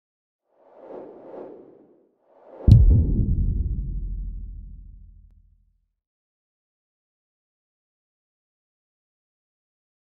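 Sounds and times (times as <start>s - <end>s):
whoosh: 0.6s - 5.3s.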